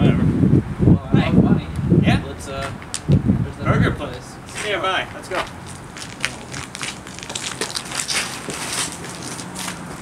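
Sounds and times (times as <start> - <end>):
footsteps on gritty concrete: 4.1 - 10.0.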